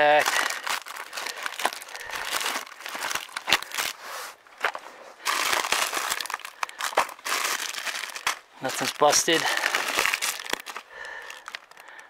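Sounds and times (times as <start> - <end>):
plastic packets crinkling: 0.0 - 12.0.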